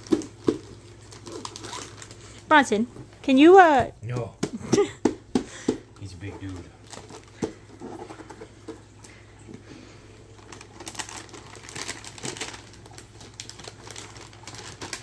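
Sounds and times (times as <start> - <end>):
wrapping paper crinkling: 0.0 - 2.5, 6.3 - 9.1, 9.8 - 15.0.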